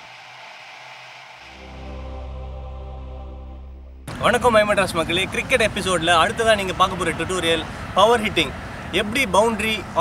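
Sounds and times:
shimmering synth jingle: 1.5 - 4.2
deep bass note: 1.5 - 4.7.

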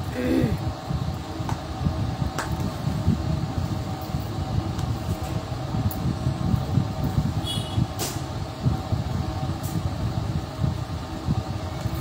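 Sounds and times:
faint fan hum: 0.0 - 12.0
low rumble of moving air: 0.0 - 12.0.

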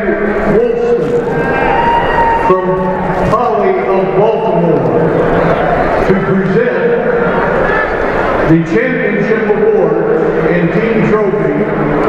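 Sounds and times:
man announcing over pa system: 0.0 - 1.4, 2.5 - 5.2, 6.0 - 7.3, 8.5 - 12.0.

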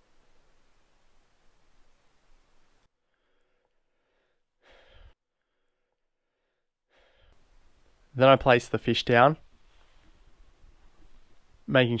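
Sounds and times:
soft rush of noise: 0.0 - 2.9, 7.4 - 12.0.

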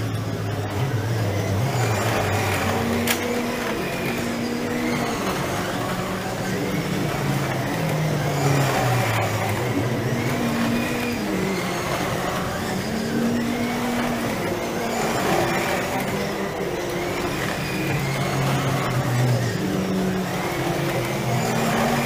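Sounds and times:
slot car electric motors whining: 0.0 - 22.0.

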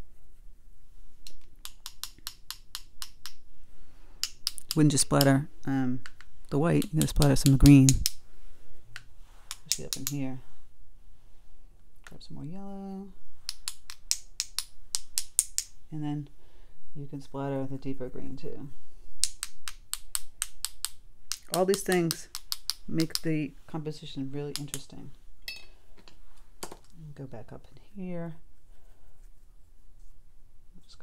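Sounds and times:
brush tapping against brush: 1.2 - 3.4, 6.0 - 8.2, 9.0 - 10.2, 19.2 - 23.5, 24.4 - 25.0
paintbrushes tapping together: 19.2 - 23.4.

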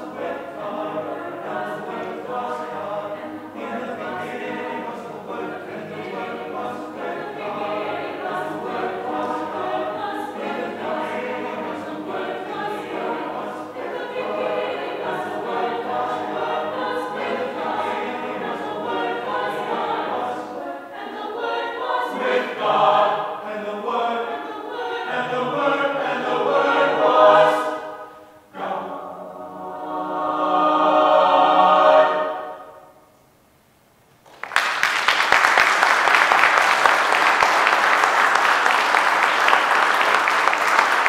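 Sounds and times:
mixed choir singing in harmony: 0.0 - 33.0.

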